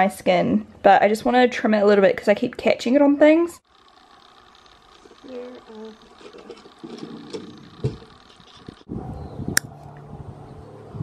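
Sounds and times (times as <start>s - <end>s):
steady low hum: 3.6s - 11.0s
faint voice: 5.2s - 6.0s.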